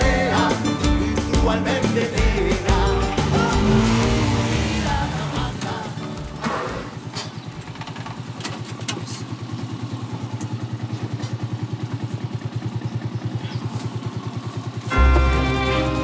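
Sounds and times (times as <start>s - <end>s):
motorcycle engine idling: 0.0s - 15.7s.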